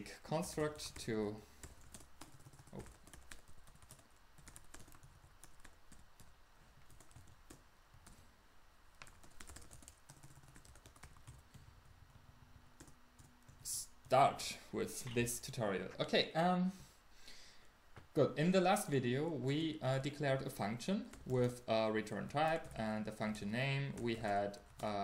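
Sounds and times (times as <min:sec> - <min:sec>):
typing on computer keyboard: 0:01.6 - 0:08.2, 0:09.0 - 0:11.5.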